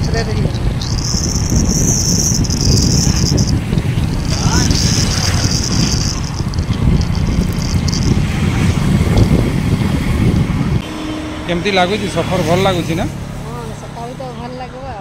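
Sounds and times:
high-pitched buzz: 0.0s - 13.1s
wind and road rumble: 0.0s - 15.0s.

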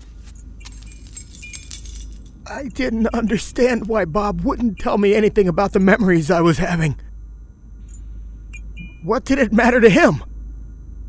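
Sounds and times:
steady low hum: 0.0s - 11.0s
keys jangling: 0.2s - 3.9s.

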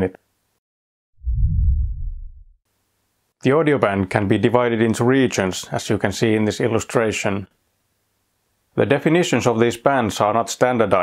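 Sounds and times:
deep low rumbling boom: 1.2s - 2.5s.

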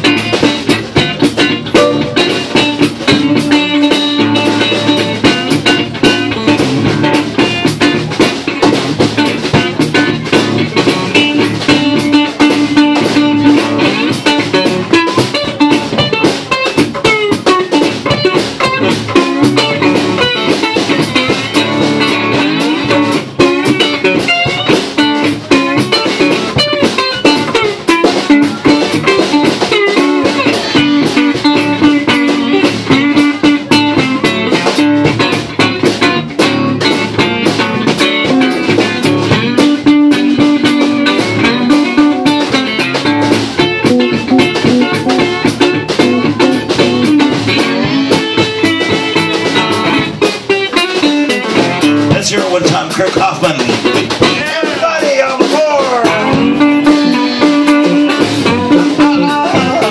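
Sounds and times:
acoustic guitar: 0.0s - 59.9s
steady beat: 0.0s - 59.9s
upright bass: 0.0s - 59.9s.

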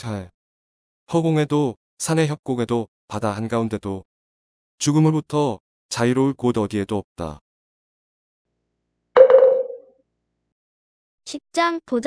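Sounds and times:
bell-like chime: 9.2s - 9.8s.

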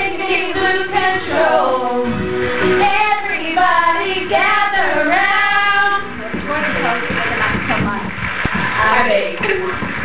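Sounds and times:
girls singing pop song: 0.0s - 10.0s.

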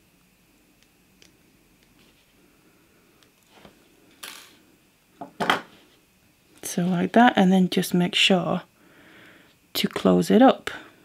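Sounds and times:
soft rustle of wire: 1.8s - 2.6s.

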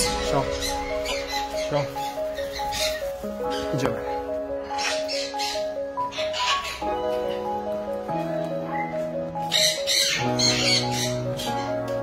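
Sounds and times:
parrots squawking: 0.0s - 3.7s, 4.6s - 7.6s, 8.7s - 11.8s
music of sustained chords: 0.0s - 12.0s.

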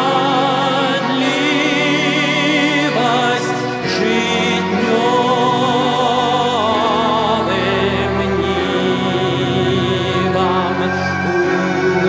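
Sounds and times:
man singing a hymn: 0.0s - 12.0s
sustained instrumental accompaniment: 0.0s - 12.0s.

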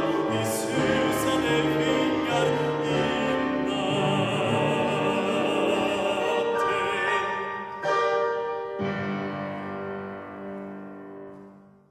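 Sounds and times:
upright piano chords: 0.0s - 11.9s.

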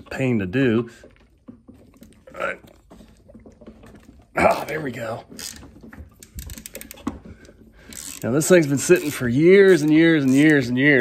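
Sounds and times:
ratchet clicking: 5.4s - 5.6s, 6.2s - 7.0s, 7.9s - 10.7s.

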